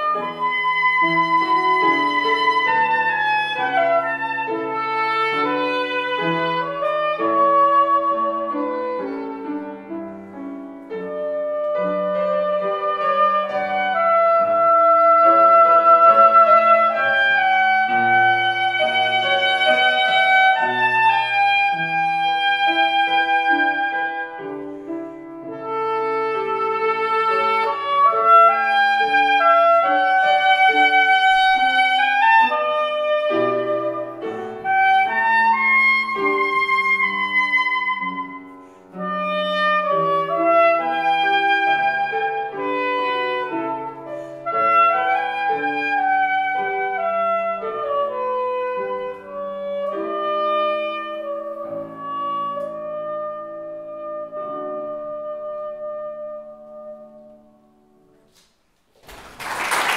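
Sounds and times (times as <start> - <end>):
soprano saxophone melody: 0.0 - 58.0
grand piano accompaniment: 0.0 - 59.9.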